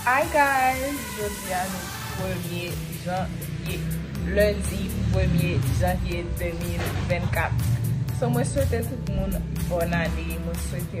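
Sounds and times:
low bass hum: 0.0s - 11.0s
music with steady beat: 0.0s - 11.0s
woman's voice: 0.0s - 11.0s.

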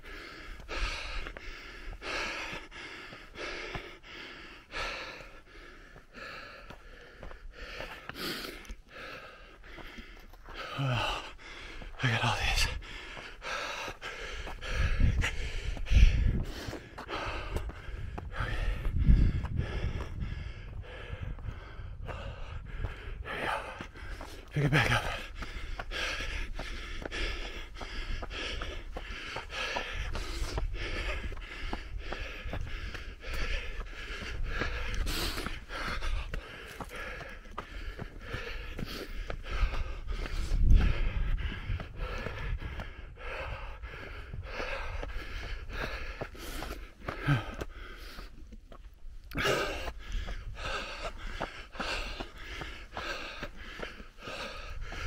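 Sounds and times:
footsteps on dirt and rock: 0.0s - 55.0s
runner panting: 0.0s - 55.0s.

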